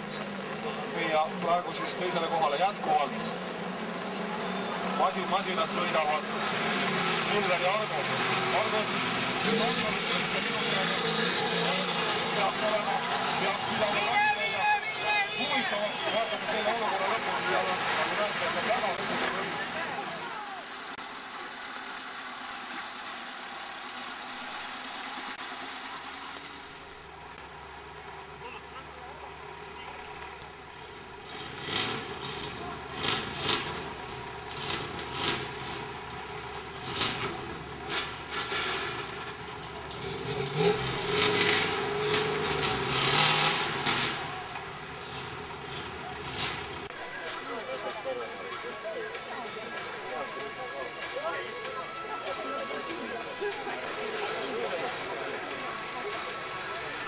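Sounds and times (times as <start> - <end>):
racing vehicle engines: 0.0 - 57.0.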